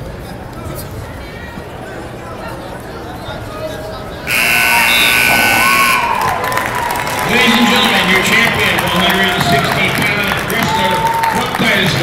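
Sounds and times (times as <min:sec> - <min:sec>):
crowd voices: 0:00.0 - 0:12.0
scoreboard buzzer: 0:04.3 - 0:06.5.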